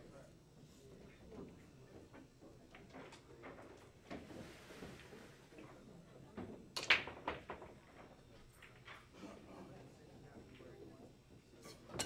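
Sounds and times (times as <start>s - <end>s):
cue ball cracking into balls: 6.8s - 7.8s.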